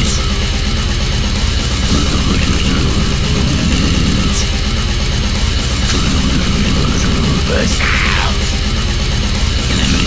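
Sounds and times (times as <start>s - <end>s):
distorted guitars: 0.0s - 10.0s
fast drums: 0.0s - 10.0s.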